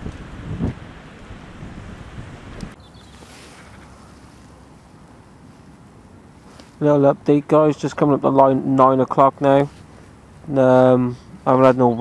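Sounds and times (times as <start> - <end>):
wind buffeting microphone: 0.0 - 4.2.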